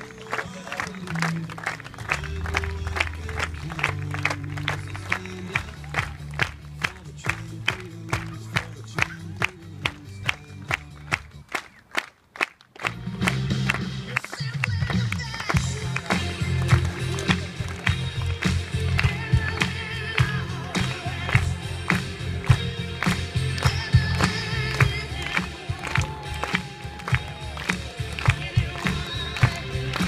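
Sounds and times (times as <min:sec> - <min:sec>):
music with steady bass: 0:00.0 - 0:11.5, 0:12.8 - 0:30.0
crowd clapping in rhythm: 0:00.0 - 0:30.0.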